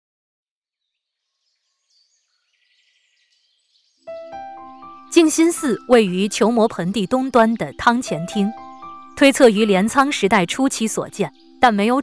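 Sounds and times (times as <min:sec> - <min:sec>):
faint bird chirps and calls: 0:01.2 - 0:12.0.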